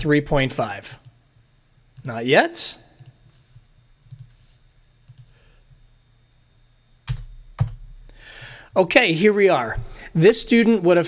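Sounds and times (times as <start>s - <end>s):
low steady hum: 0.0s - 11.0s
computer mouse clicks: 3.0s - 3.4s, 4.0s - 5.3s.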